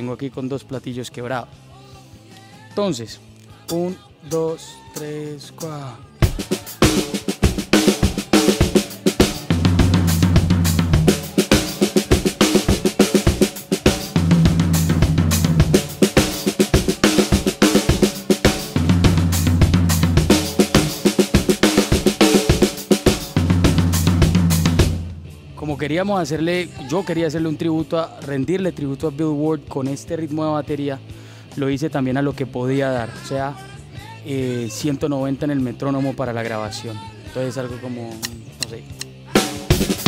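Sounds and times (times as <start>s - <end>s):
fast hard rock drum groove: 6.2s - 26.4s, 39.3s - 40.0s.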